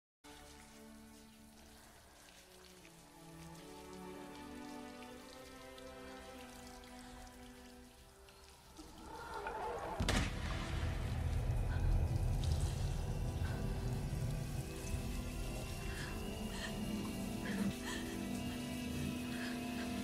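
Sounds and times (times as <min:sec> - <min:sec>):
soft slow music: 0:00.3 - 0:09.7, 0:10.3 - 0:20.0
running shower water: 0:00.3 - 0:20.0.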